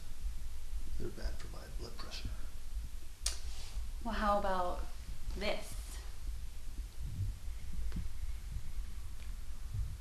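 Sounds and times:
low uneven rumbling hum: 0.0s - 10.0s.

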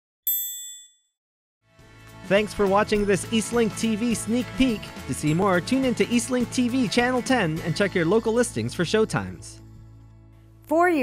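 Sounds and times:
bright high chime: 0.3s - 1.0s.

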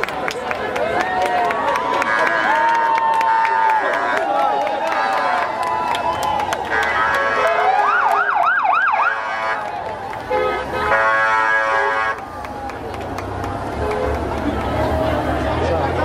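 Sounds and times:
street crowd voices: 0.0s - 16.0s
emergency vehicle siren: 1.7s - 10.3s
steady horn-like tone: 10.3s - 12.2s.

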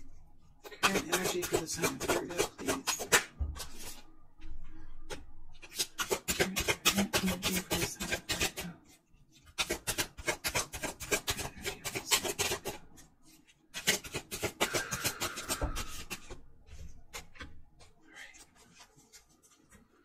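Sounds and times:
cards being shuffled: 13.8s - 19.9s.

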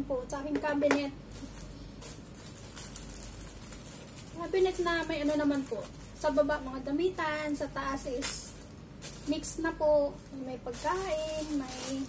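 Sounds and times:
plastic bag rustling: 1.2s - 12.0s.

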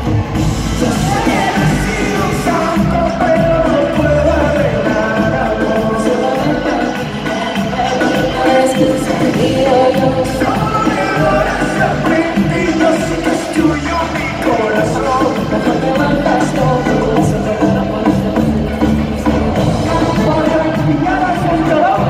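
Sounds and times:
live pop band: 0.0s - 22.0s
woman singing into microphone: 0.8s - 13.3s, 15.6s - 22.0s.

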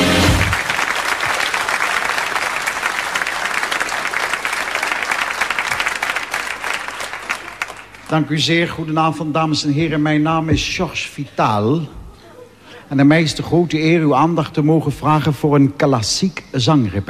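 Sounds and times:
music: 0.0s - 0.6s
audience applauding: 0.0s - 8.3s.

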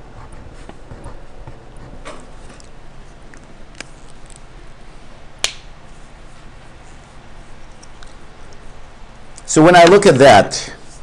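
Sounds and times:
sharp click: 5.4s - 5.7s.

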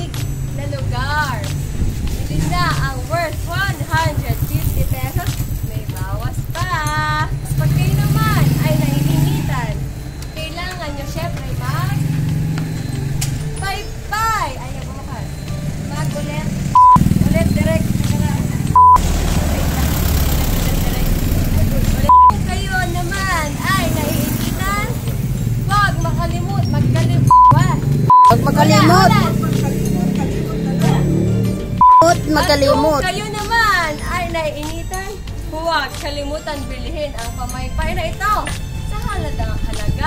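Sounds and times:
vehicle engine rumble: 0.0s - 35.3s
short electronic beep: 16.8s - 17.1s, 18.8s - 19.0s, 22.1s - 22.4s, 27.3s - 29.1s, 31.8s - 33.0s
high-pitched sing-song voice: 28.2s - 31.0s, 31.8s - 33.5s.

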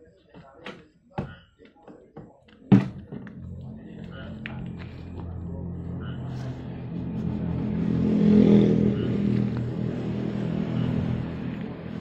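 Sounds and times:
vehicle engine humming: 3.2s - 12.0s.

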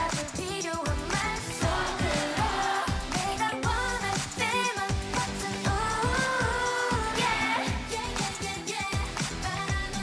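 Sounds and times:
group singing pop dance song: 0.0s - 10.0s.

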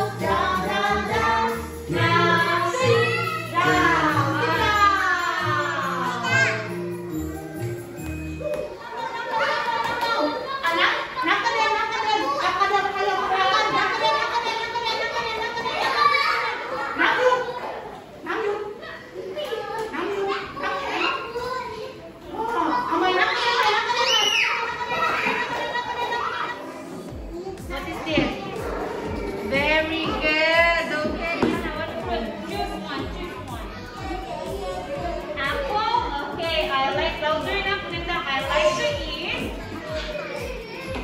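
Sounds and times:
background music: 0.0s - 9.6s, 25.6s - 41.0s
young children chattering and calling: 0.0s - 41.0s.

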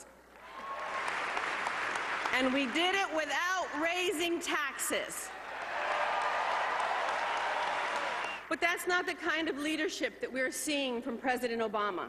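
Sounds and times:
crowd applauding: 0.4s - 3.1s, 5.3s - 8.5s.

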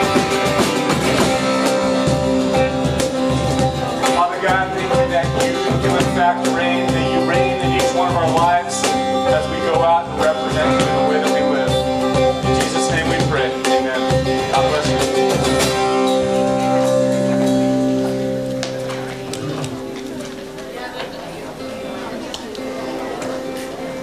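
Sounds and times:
live band playing a song: 0.0s - 24.0s.

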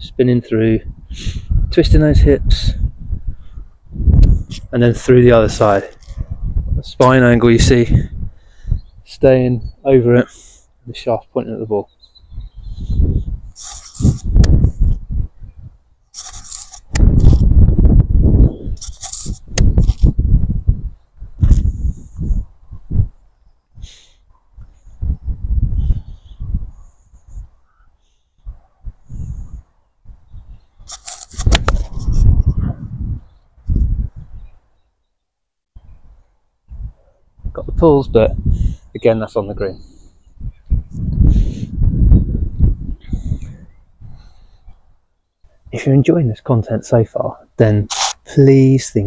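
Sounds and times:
wind buffeting microphone: 0.0s - 9.9s, 12.2s - 24.0s, 24.6s - 27.8s, 28.4s - 34.6s, 35.8s - 45.0s.

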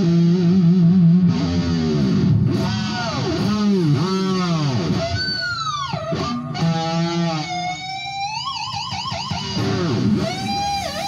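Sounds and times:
electric guitar bending notes: 0.0s - 11.0s.

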